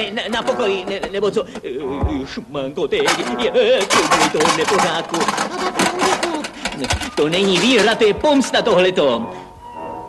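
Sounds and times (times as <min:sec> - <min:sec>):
pots and pans rattling: 0:00.0 - 0:09.2
heavy thump: 0:02.0 - 0:02.4.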